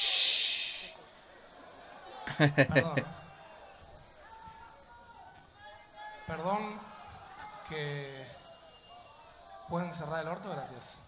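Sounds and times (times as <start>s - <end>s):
loud hiss: 0.0s - 1.0s.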